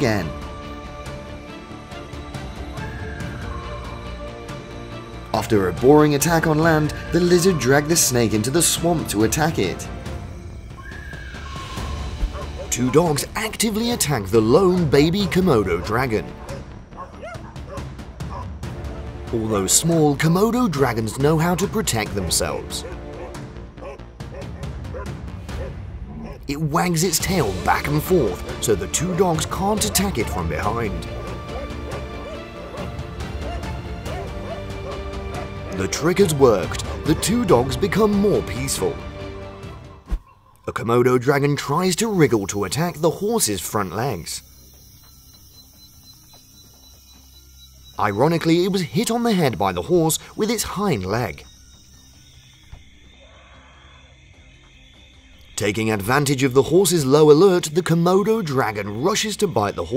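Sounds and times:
background music: 0.0s - 59.9s
dogs yelping and barking: 12.2s - 13.2s, 15.0s - 18.6s, 22.8s - 26.5s, 28.4s - 37.7s
low steady tones: 27.0s - 59.9s
thin high whine: 41.9s - 57.6s.

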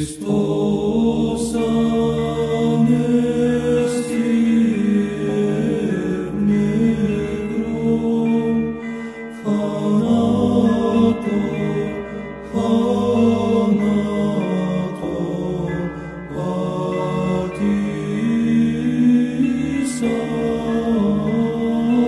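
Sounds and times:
choir chanting long notes: 0.0s - 22.0s
low sustained drone: 0.0s - 22.0s.

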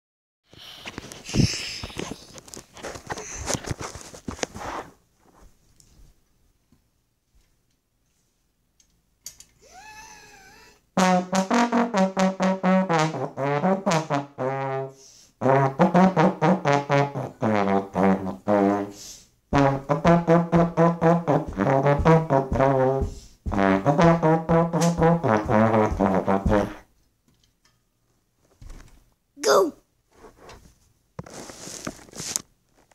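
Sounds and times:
slide trombone tongued notes: 11.0s - 26.8s.

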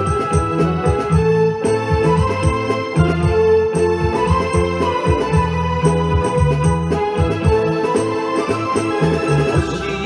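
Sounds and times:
instrumental pop backing track: 0.0s - 10.0s.

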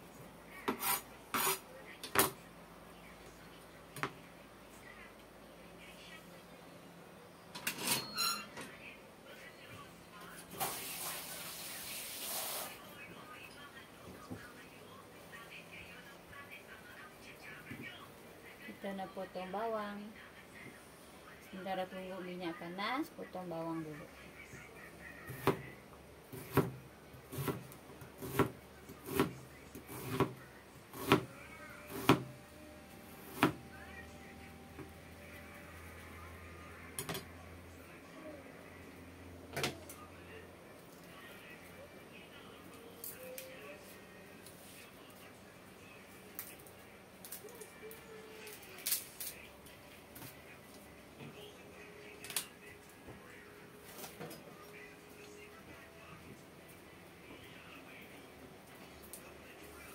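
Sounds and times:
knife chopping onion on board: 25.3s - 25.7s, 26.3s - 31.3s, 31.9s - 32.3s.

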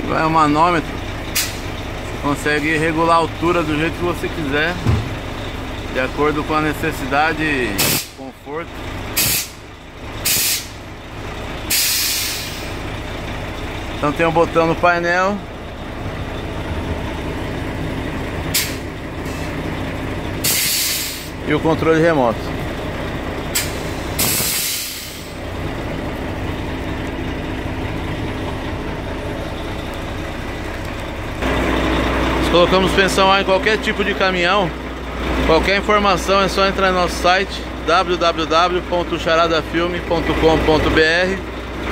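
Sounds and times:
low engine rumble: 0.0s - 41.9s
compressed air hissing from valves: 9.2s - 9.6s, 10.2s - 10.8s, 11.7s - 12.8s, 20.4s - 21.4s, 23.6s - 25.4s.

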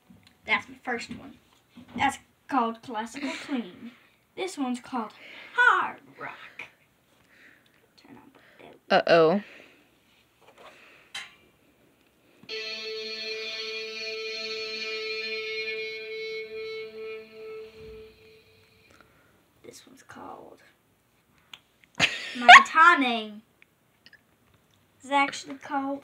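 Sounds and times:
distorted electric guitar note: 12.5s - 19.0s.

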